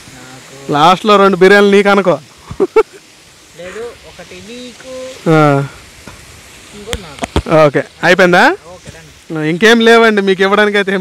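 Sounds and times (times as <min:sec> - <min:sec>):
men talking quietly: 0:00.0 - 0:11.0.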